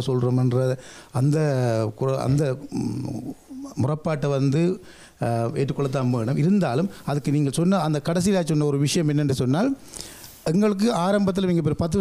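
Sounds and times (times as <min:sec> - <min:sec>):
man talking into a microphone: 0:00.0 - 0:09.8, 0:10.4 - 0:12.0.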